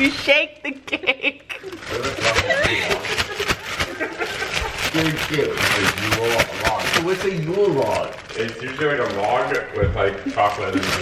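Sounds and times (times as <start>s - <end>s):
people talking: 0.0s - 3.4s, 4.9s - 11.0s
people laughing: 0.8s - 6.0s
plastic bag crinkling: 1.5s - 11.0s.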